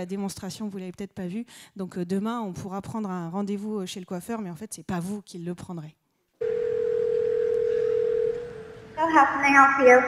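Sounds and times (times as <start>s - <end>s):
telephone ringback tone: 6.4s - 9.0s.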